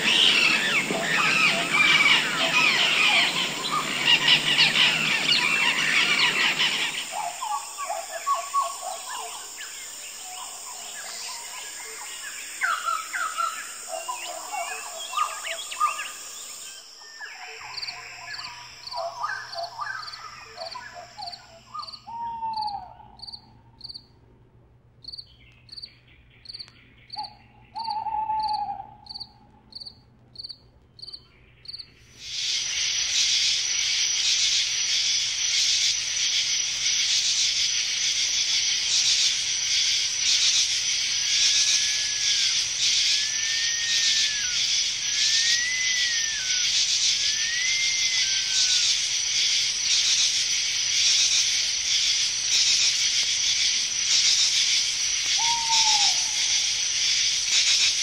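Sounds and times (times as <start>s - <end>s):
bird calls and chirps: 0.0s - 24.0s, 25.0s - 34.7s, 40.2s - 49.1s, 52.5s - 56.7s
falling bird calls: 0.0s - 24.0s, 25.0s - 50.5s, 51.1s - 58.0s
cricket chirping: 0.0s - 24.2s, 25.0s - 58.0s
dense hiss: 32.2s - 58.0s.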